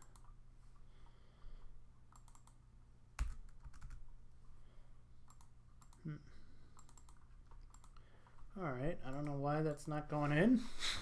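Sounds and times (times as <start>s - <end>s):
computer mouse clicking: 0.0s - 0.4s, 2.1s - 2.6s, 5.2s - 6.0s, 6.7s - 8.4s, 9.1s - 9.4s
faint low hum: 0.0s - 10.7s.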